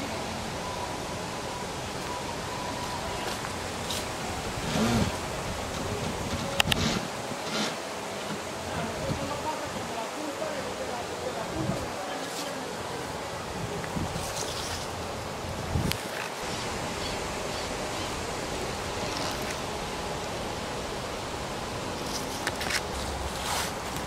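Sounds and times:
faint distant voices: 0:00.0 - 0:23.8
outdoor background noise: 0:00.0 - 0:24.0.

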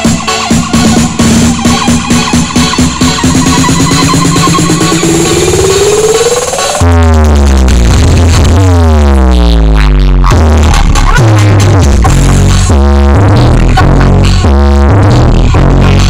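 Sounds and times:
electronic dance music: 0:00.0 - 0:16.0
heavy bass drop: 0:00.0 - 0:16.0
falling synth sweeps: 0:02.6 - 0:06.8.

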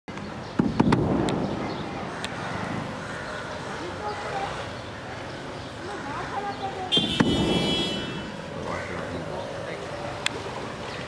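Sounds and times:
outdoor background noise: 0:00.1 - 0:11.0.

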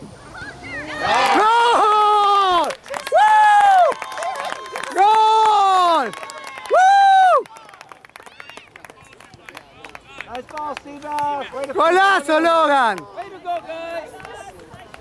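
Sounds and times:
crowd noise: 0:00.0 - 0:15.0
high-pitched cheering shouts: 0:00.4 - 0:07.5.

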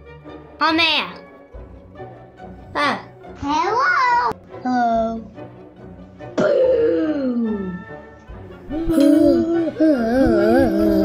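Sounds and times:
music with wavering melody: 0:04.3 - 0:11.0.

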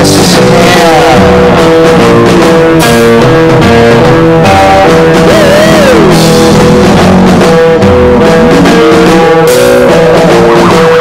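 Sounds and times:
lo-fi rock music: 0:00.0 - 0:11.0.

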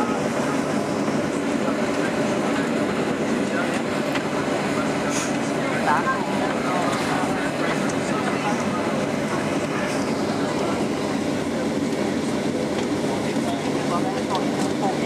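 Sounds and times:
jet engines droning at idle: 0:00.0 - 0:15.0
passengers' voices: 0:00.0 - 0:15.0.

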